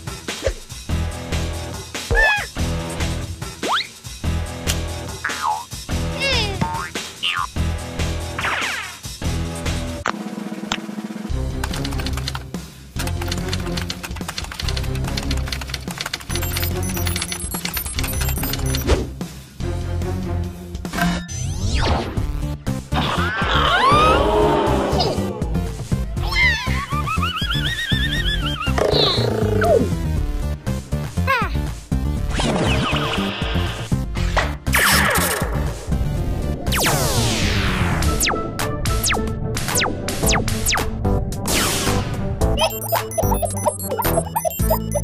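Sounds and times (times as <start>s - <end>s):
cartoon soundtrack music: 0.0s - 45.0s
cartoon music with bass figure: 3.6s - 8.8s, 38.0s - 41.2s, 42.5s - 45.0s
warbling high tone: 42.6s - 45.0s.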